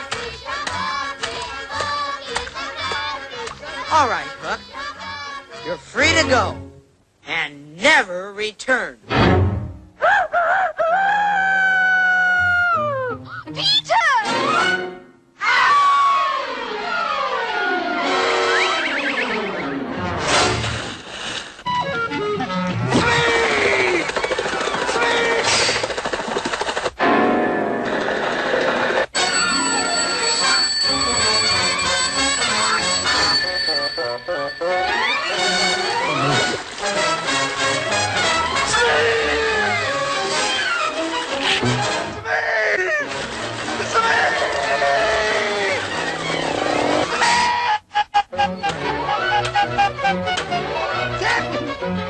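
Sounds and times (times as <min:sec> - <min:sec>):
man calling out: 0:07.2 - 0:09.0
orchestral cartoon music: 0:09.1 - 0:10.0, 0:33.3 - 0:42.2, 0:48.3 - 0:52.0.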